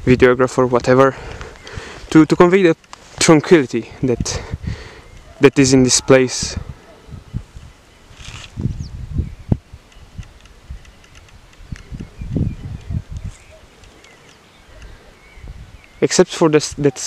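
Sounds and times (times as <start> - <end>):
wind buffeting microphone: 3.8 - 16.0.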